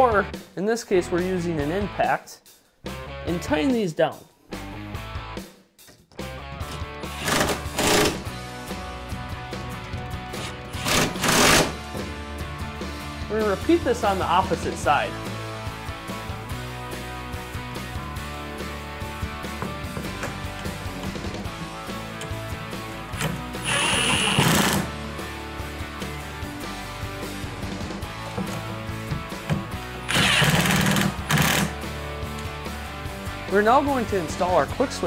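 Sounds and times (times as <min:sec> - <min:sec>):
background music: 0:00.0 - 0:35.0
impact driver hammering nuts: 0:07.1 - 0:08.2, 0:10.4 - 0:12.1, 0:23.2 - 0:24.9, 0:29.4 - 0:31.7.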